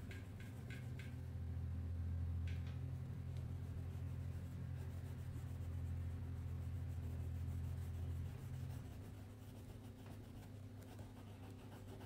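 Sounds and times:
low steady hum: 0:00.0 - 0:12.0
crayon rubbing on paper: 0:03.8 - 0:12.0.

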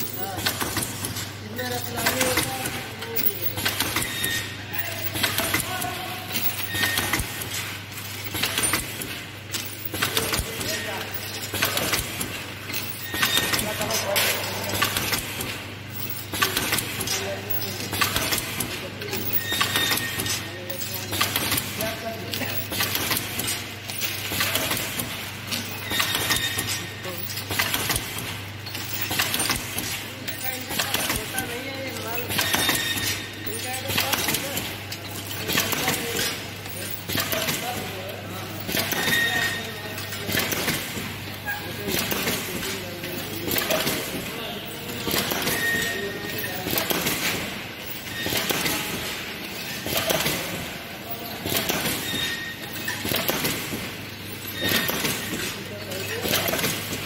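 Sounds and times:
packing machine clicking and clattering: 0:00.0 - 0:57.0.

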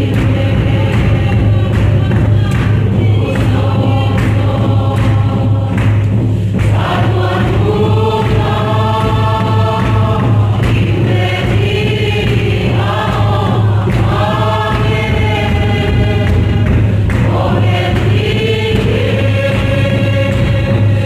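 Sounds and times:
congregation singing a hymn: 0:00.0 - 0:21.0
steady low hum: 0:00.0 - 0:21.0.

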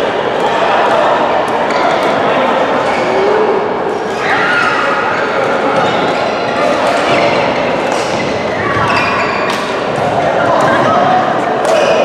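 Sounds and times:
echoing chatter of voices: 0:00.0 - 0:12.0.

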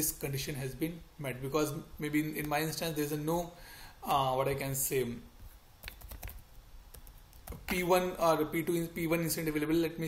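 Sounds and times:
computer keyboard typing: 0:05.8 - 0:07.8.

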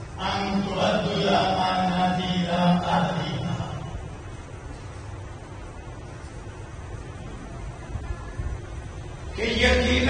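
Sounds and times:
man chanting in long held notes: 0:00.2 - 0:03.9, 0:09.3 - 0:10.0.

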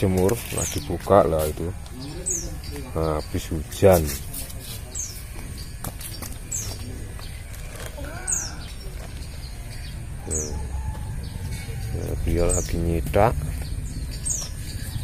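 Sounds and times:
small bird chirping: 0:00.4 - 0:15.0.

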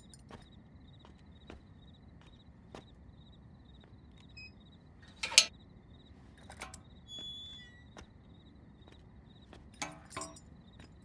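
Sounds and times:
crickets chirping: 0:00.0 - 0:11.0
metal gate clattering: 0:05.1 - 0:05.5, 0:09.8 - 0:10.5
electronic gate lock beeping: 0:06.6 - 0:08.0.

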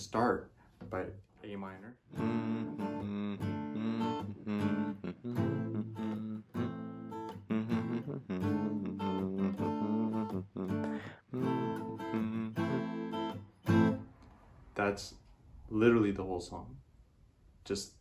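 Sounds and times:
acoustic guitar strumming: 0:02.1 - 0:14.1.

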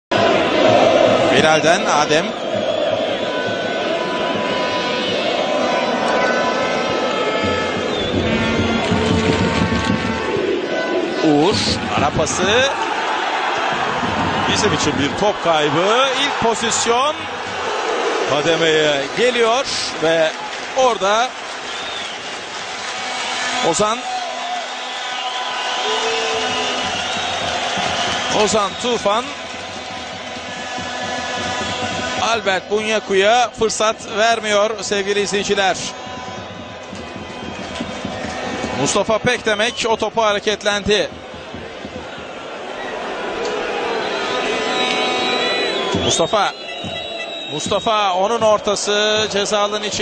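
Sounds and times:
stadium crowd din: 0:00.0 - 0:50.0
faint high whistle: 0:44.0 - 0:48.2
sustained steady tones: 0:44.2 - 0:49.6.

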